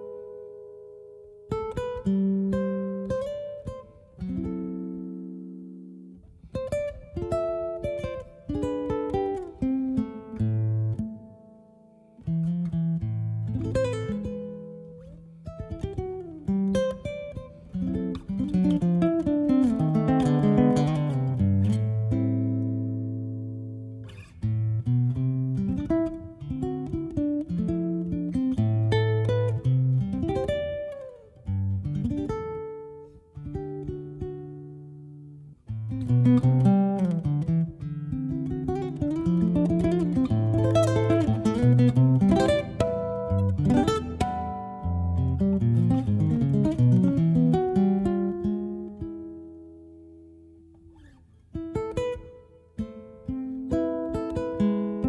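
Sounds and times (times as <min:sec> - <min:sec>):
classical guitar fingerstyle: 0:00.0 - 0:55.0.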